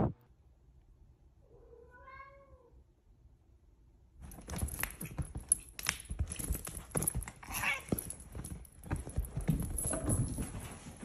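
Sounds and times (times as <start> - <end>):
cat paws pattering on wood floor: 4.2 - 11.0
cat paws thudding on couch: 4.2 - 11.0.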